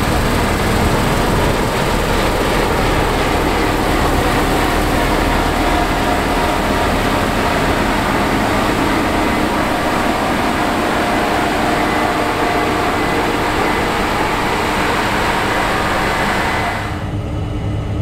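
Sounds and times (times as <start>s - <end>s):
combine harvester machinery din: 0.0s - 17.1s
faint steady whine: 0.0s - 18.0s.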